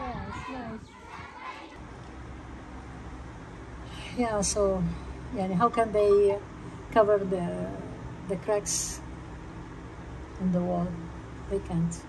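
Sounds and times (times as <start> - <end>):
children calling and chattering: 0.0 - 1.9.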